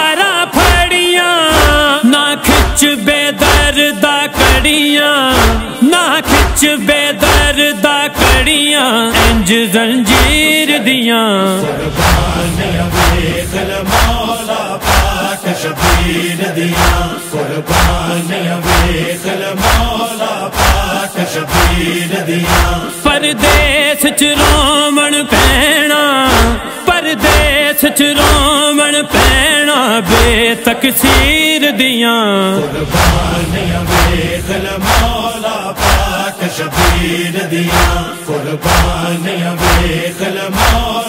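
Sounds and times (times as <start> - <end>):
chorus chanting: 0.2 - 10.5, 11.2 - 31.8, 32.4 - 41.0
heavy beat: 0.6 - 3.8, 4.4 - 10.5, 11.6 - 31.4, 32.6 - 41.0
voices chanting low: 11.6 - 23.0
deep thudding beat: 11.7 - 17.1, 20.6 - 23.8, 32.6 - 39.0.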